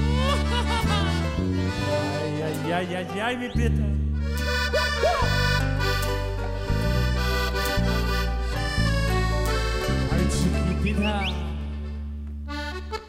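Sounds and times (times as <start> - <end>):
accordion chords: 0.0 - 13.0
deep bass notes: 0.0 - 13.0
mariachi band playing: 0.0 - 13.0.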